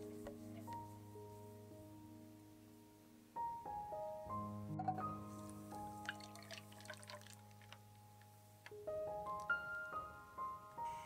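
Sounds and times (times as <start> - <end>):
soft piano music: 0.0 - 11.0
liquid dripping through sieve: 6.0 - 7.8.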